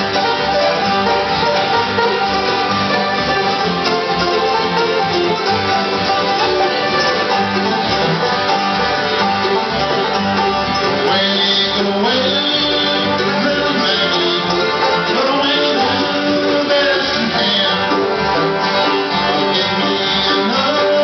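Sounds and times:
banjo: 0.0 - 21.0
mandolins: 0.0 - 21.0
strummed acoustic guitars: 0.0 - 21.0.

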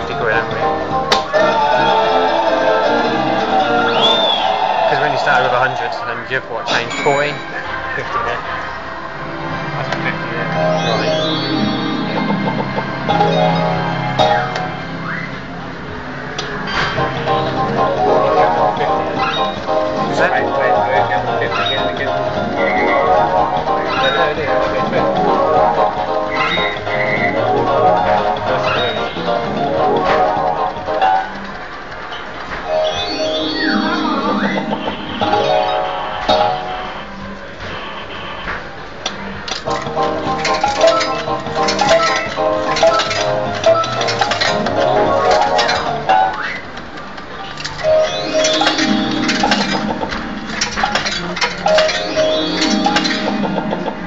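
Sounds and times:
beeping notes and melody: 0.0 - 5.5, 9.0 - 31.5, 32.7 - 37.4, 39.6 - 47.0, 47.8 - 54.0
fruit machine electronic music: 8.9 - 31.4, 32.7 - 37.3, 39.7 - 46.8, 47.8 - 54.0.

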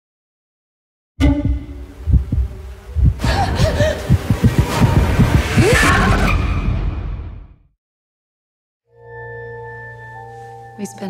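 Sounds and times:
heartbeat thumps: 1.2 - 5.8.

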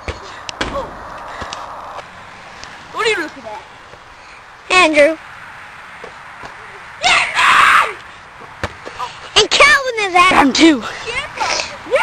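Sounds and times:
young person screaming: 7.0 - 8.0.

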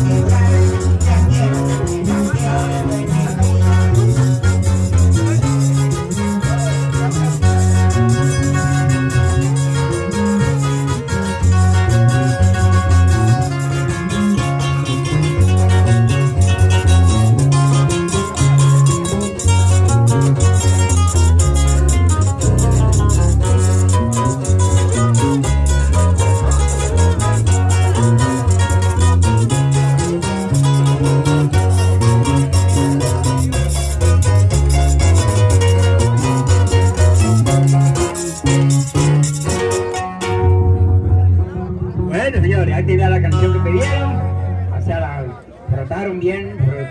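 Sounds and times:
steady bass beat: 0.0 - 45.0
live folk band playing: 0.0 - 46.9
plucked guitars: 0.0 - 46.9.

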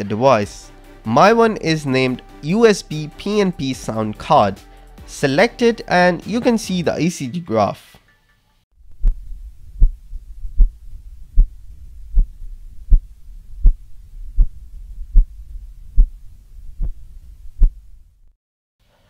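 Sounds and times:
low heartbeat thumps: 8.8 - 18.2
steady low signal hum: 8.8 - 18.3.

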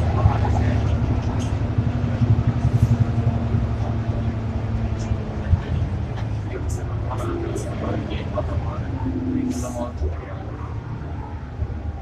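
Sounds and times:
bus diesel engine rumble: 0.0 - 12.0.

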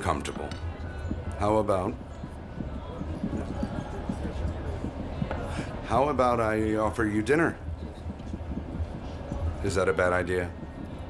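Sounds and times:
wheels knocking: 0.0 - 11.0.

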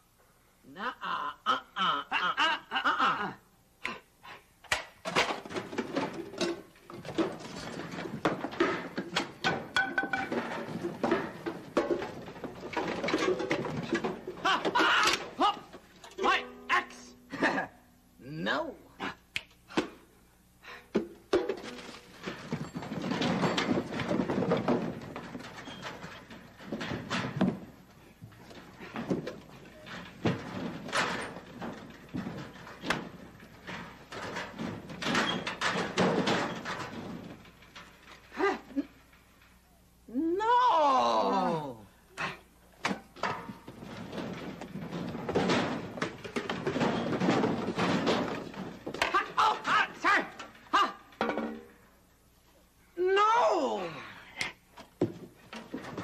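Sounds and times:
objects clattering in metal locker: 4.7 - 17.7, 21.0 - 39.6, 42.2 - 51.9, 54.8 - 56.0.

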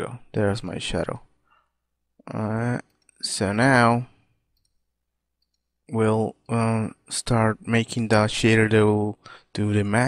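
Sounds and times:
narrator speaking: 0.0 - 1.3, 2.2 - 4.1, 5.9 - 10.0.

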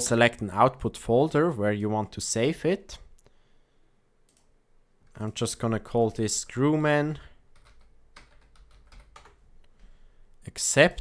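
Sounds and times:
computer keyboard typing: 7.5 - 9.4.

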